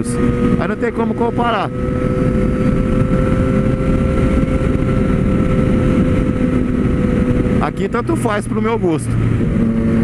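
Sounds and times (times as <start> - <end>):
motorcycle engine cruising: 0.0 - 10.0
wind rumble on microphone: 0.0 - 10.0.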